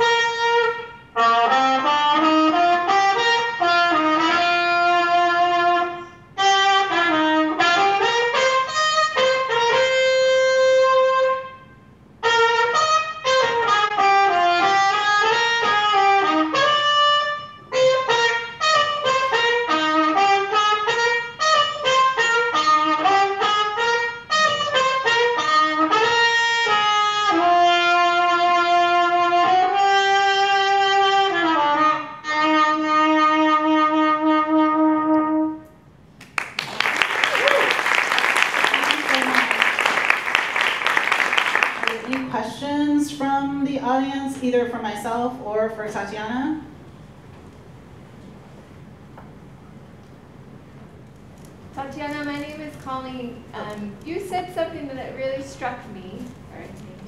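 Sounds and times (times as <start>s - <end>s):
jazz trumpet melody: 0.0s - 35.9s, 38.2s - 45.2s.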